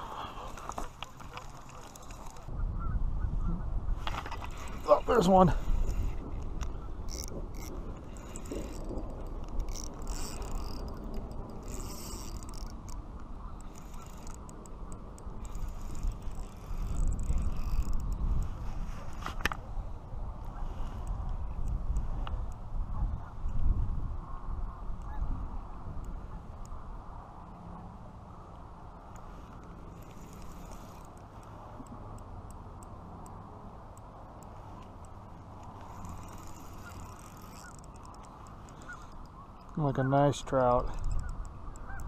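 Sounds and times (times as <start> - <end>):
reel and tackle clicks: 0.0 - 2.5, 4.0 - 22.7, 25.9 - 26.8, 28.4 - 42.0
handling noise rubbing camera: 0.3 - 2.5, 15.4 - 19.7, 34.5 - 39.3.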